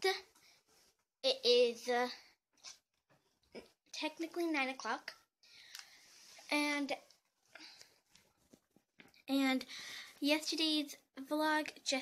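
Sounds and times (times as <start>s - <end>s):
faint handling sounds: 5.6s - 9.3s.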